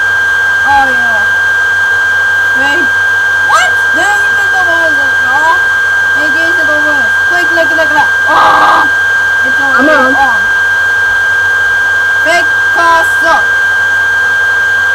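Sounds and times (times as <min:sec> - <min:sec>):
high-pitched whine: 0:00.0 - 0:14.9
wordless voice: 0:09.5 - 0:10.5
brief buzzy tone: 0:09.6 - 0:10.6.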